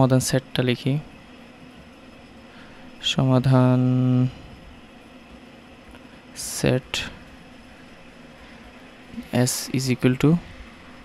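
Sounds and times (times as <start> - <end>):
room and microphone hiss: 0.0 - 11.0.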